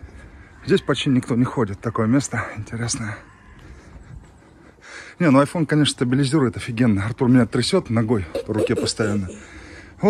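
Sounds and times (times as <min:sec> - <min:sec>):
man breathing in: 0:09.3 - 0:10.0.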